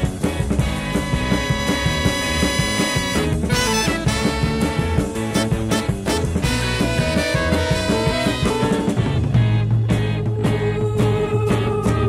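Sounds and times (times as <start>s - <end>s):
drum hits: 0.0s - 10.2s
bass line: 0.0s - 12.0s.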